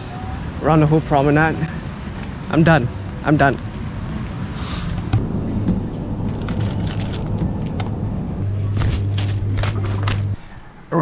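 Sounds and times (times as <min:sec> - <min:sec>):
background music with bass and beats: 0:04.4 - 0:10.4.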